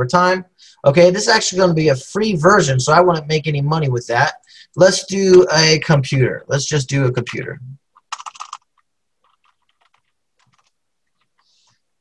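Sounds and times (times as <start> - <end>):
keyboard typing: 8.0 - 11.6.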